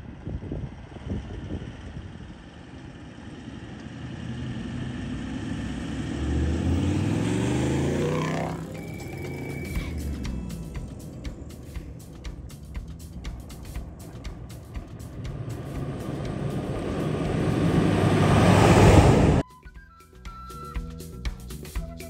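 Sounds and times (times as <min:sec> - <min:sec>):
vehicle engine driving past: 0:02.5 - 0:19.4
steady high tone: 0:07.2 - 0:20.8.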